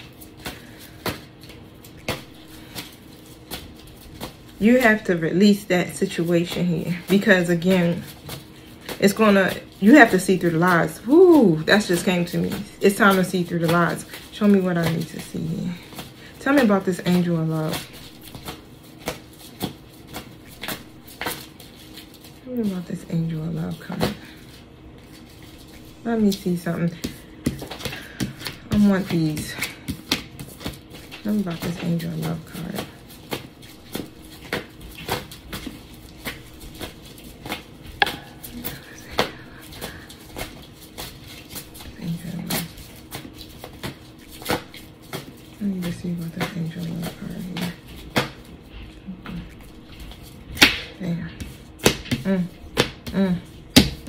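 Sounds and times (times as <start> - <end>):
cards being shuffled by hand: 0.0 - 54.0.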